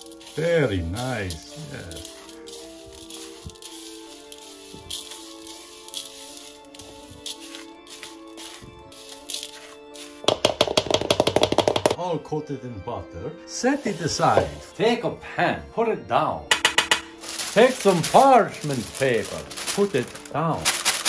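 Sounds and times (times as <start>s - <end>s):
utensil scraping plastic bowl: 0.0s - 12.0s
background music: 0.0s - 21.0s.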